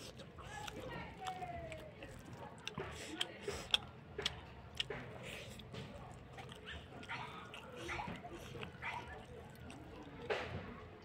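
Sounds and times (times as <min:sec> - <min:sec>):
eating clicks and smacks: 0:00.0 - 0:11.0.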